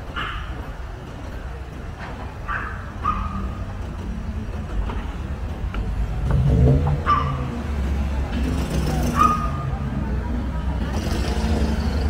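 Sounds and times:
car engines rumbling: 0.0s - 12.0s
dog yelping: 2.5s - 3.6s, 9.2s - 9.7s.

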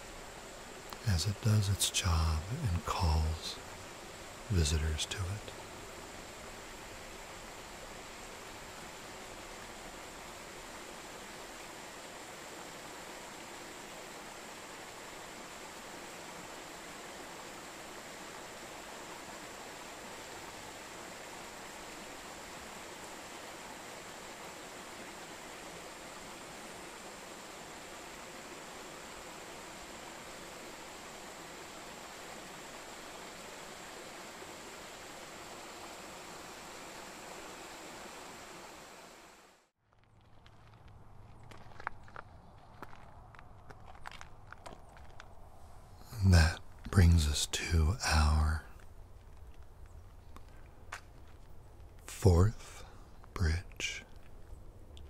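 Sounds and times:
river water rushing: 0.0s - 39.7s.

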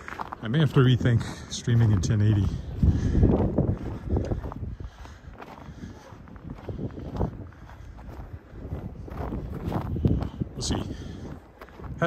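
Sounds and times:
footsteps in snow: 0.0s - 12.0s.

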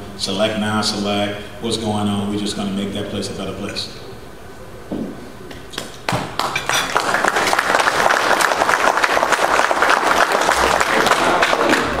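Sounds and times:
audience applauding: 6.1s - 12.0s.

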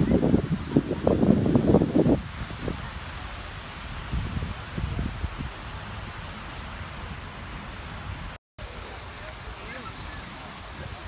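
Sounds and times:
wind buffeting microphone: 0.0s - 8.4s
steady outdoor hiss: 0.0s - 11.0s.

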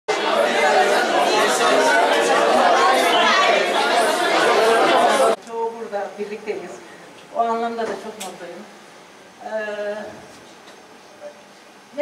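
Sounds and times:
crowd chatter: 0.1s - 8.3s.

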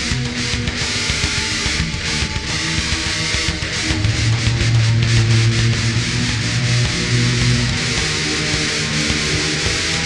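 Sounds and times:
death metal music: 0.0s - 10.0s
heavily distorted guitars: 0.0s - 10.0s.

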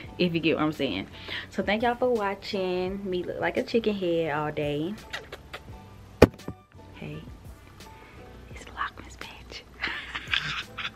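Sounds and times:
woman whispering: 8.6s - 9.7s.

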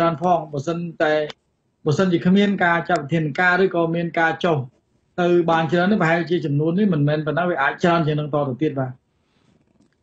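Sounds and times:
man speaking: 0.0s - 1.3s, 1.9s - 9.0s.

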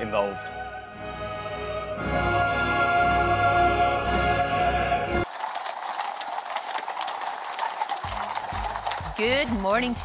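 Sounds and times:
horses hooves clip-clopping on pavement: 5.3s - 10.0s.

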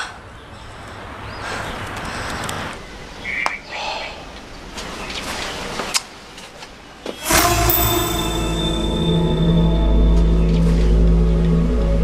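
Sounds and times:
traffic: 0.0s - 7.2s
music with low held chord: 7.2s - 12.0s.

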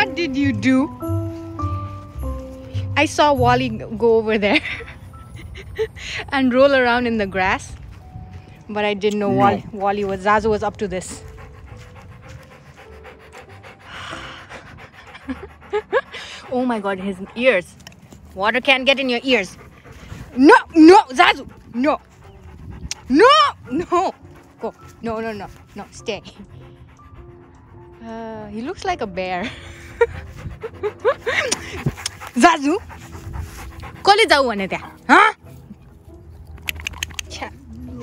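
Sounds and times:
dog panting quickly: 0.0s - 37.8s.

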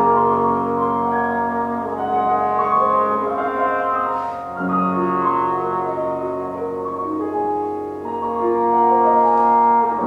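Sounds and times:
bass trombone: 0.0s - 10.0s
piano: 0.0s - 10.0s.

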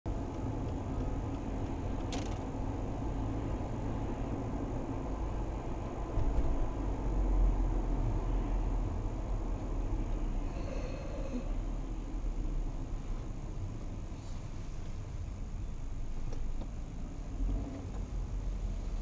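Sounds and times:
car road and engine rumble: 0.1s - 19.0s.

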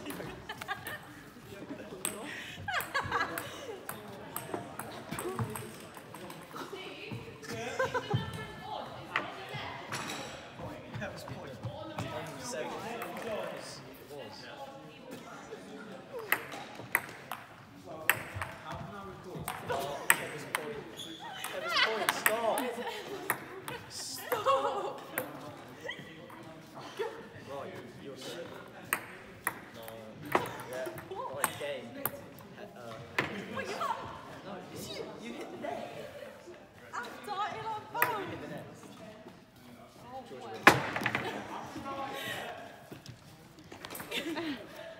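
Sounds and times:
ball bouncing: 2.8s - 6.4s, 16.3s - 17.5s, 18.1s - 20.6s, 23.3s - 23.8s.

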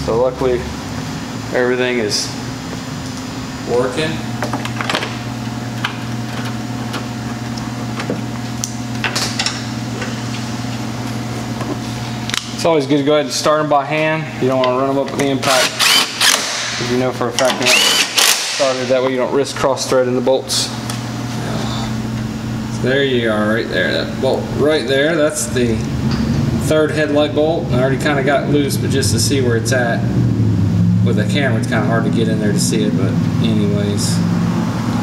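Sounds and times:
steady low hum: 0.0s - 35.0s.

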